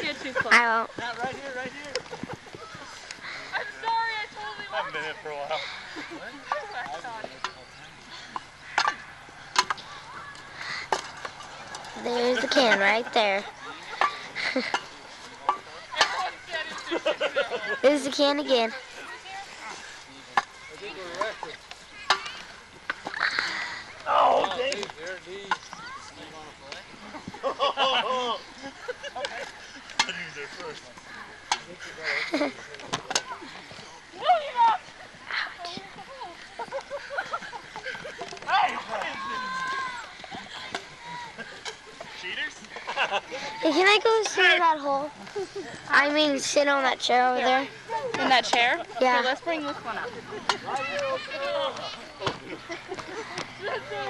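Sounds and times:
voices and laughter: 0.0 - 54.0
sticks clacking: 8.4 - 11.9.

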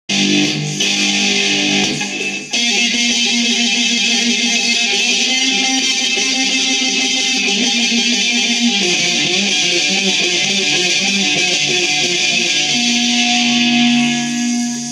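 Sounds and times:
electric guitar sustained notes: 0.1 - 14.9.

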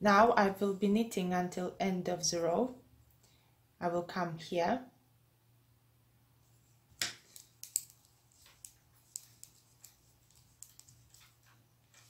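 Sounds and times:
metal knitting needles clicking: 7.0 - 12.0.

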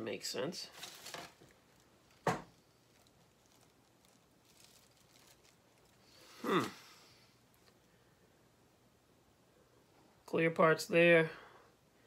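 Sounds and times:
plastic parts and bags rustling: 0.6 - 7.9.

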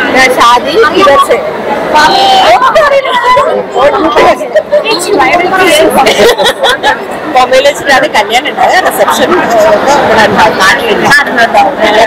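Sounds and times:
people chatting: 0.0 - 12.0.

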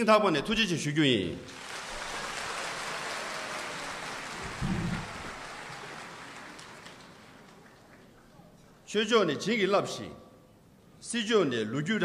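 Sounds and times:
audience applause: 1.5 - 8.3.

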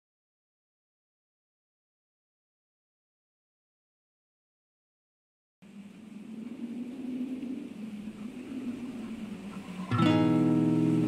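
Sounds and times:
low steady rumbling: 5.6 - 11.0.

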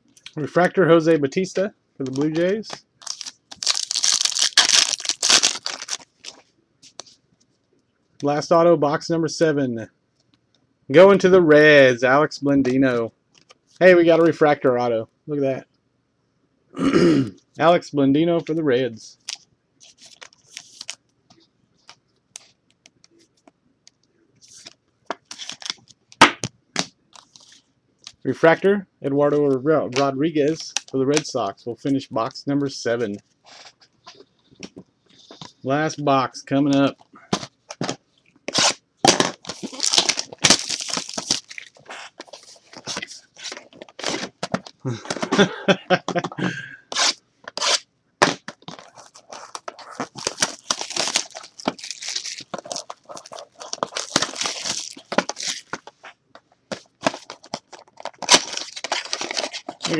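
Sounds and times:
plastic card sleeve crinkling: 2.0 - 7.0, 19.2 - 21.0, 24.4 - 26.0, 27.1 - 28.2, 36.8 - 44.8, 48.5 - 59.9
cardboard box tearing: 39.6 - 41.7
person laughing: 44.8 - 46.9.

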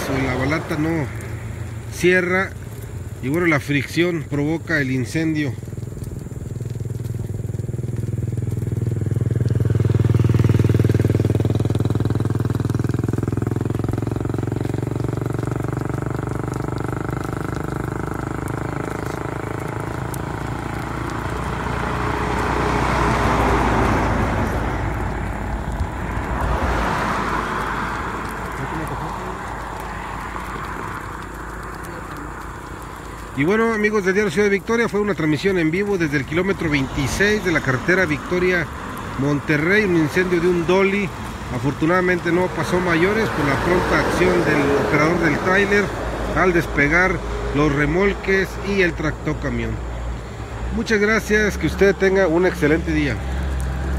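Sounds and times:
heavy vehicle engine hum: 0.0 - 3.6, 4.3 - 53.9
road rumble: 0.0 - 53.9
vehicles rushing past: 0.0 - 53.9.

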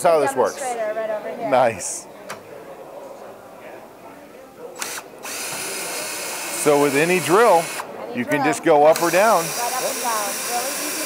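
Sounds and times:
cordless drill burst: 4.8 - 7.9, 8.8 - 11.0.

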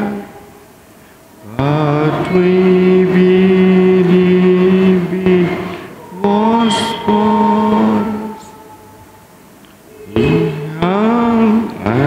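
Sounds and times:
person singing a hymn: 0.0 - 12.0.

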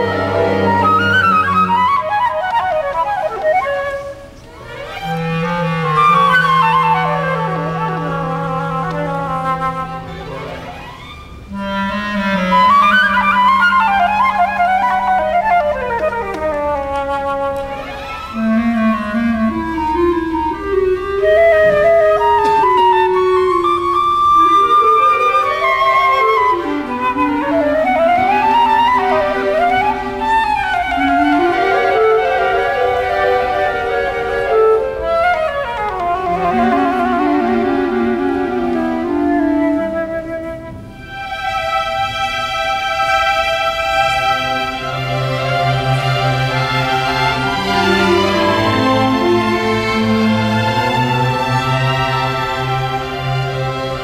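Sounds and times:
orchestral accompaniment: 0.0 - 54.0
solo flute melody: 0.0 - 54.0.

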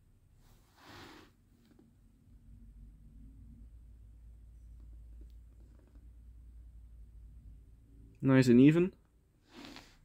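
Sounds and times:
faint soft rustle: 0.3 - 2.1.

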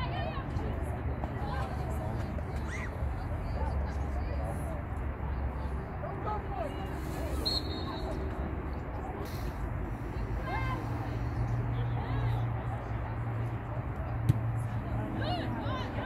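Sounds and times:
faint indistinct voices: 0.0 - 16.0.

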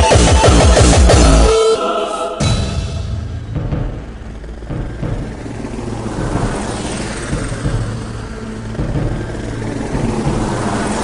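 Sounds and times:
noise sweeps: 0.4 - 11.0
whoosh: 2.3 - 11.0
low bass drone: 2.4 - 11.0.

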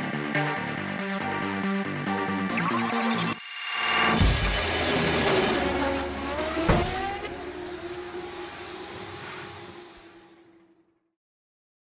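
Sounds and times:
sharp hit: 2.5 - 7.3.

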